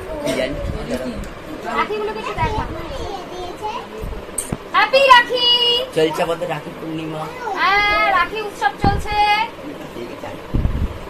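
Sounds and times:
young children chattering: 0.0s - 4.4s, 5.8s - 8.2s.

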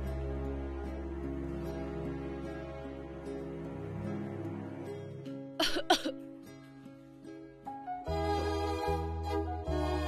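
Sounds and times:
soft background music: 0.0s - 10.0s
person coughing: 5.6s - 6.2s.

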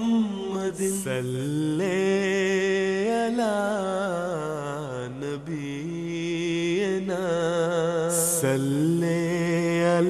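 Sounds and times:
person chanting: 0.0s - 10.0s.

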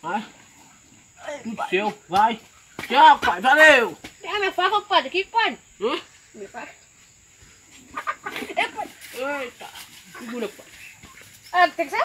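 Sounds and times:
hen clucking and squawking: 7.7s - 8.8s.

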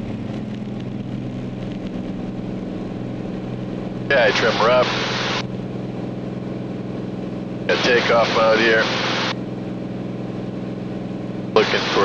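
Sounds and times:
aircraft engine and propeller drone: 0.0s - 12.0s.

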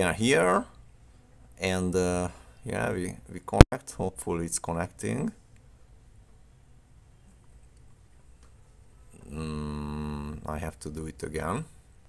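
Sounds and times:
faint low hum: 0.0s - 12.0s
man saying drawn-out uh: 9.2s - 10.8s.

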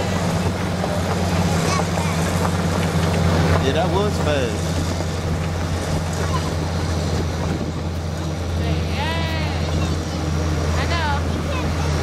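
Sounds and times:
engine low drone: 0.0s - 12.0s
wagon rumbling: 0.0s - 12.0s.

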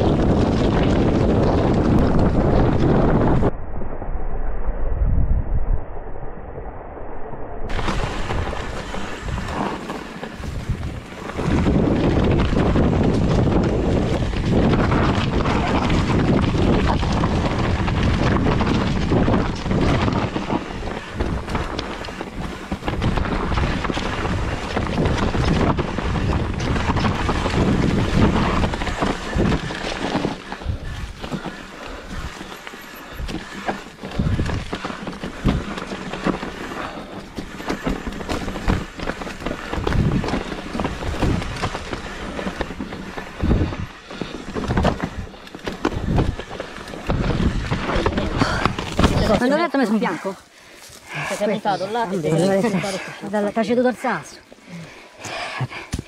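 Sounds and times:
bike rattling over bumps: 0.0s - 3.5s, 7.7s - 56.0s
wind buffeting microphone: 0.0s - 56.0s
tyres crunching over stones and leaves: 7.7s - 53.9s.

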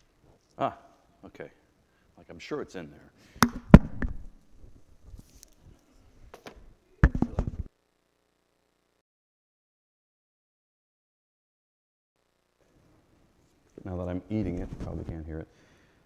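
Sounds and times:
lapel microphone handling knocks: 6.4s - 7.7s.

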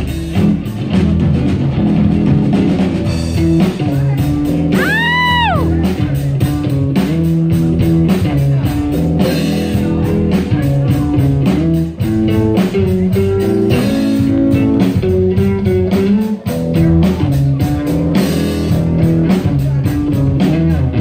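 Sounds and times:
drum kit: 0.0s - 21.0s
electric guitar: 0.0s - 21.0s
upright double bass: 0.0s - 21.0s.

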